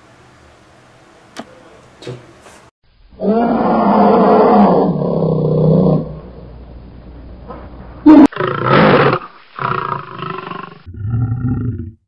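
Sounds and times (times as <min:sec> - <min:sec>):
animal roar: 0:03.1 - 0:06.5, 0:08.0 - 0:12.0.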